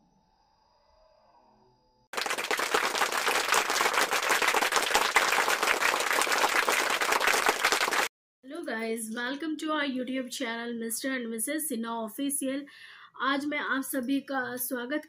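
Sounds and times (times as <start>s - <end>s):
crowd clapping: 2.2s - 8.1s.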